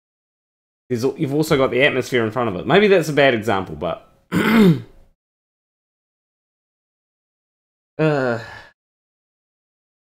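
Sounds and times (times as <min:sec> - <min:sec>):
man clearing throat: 0:04.3 - 0:05.0.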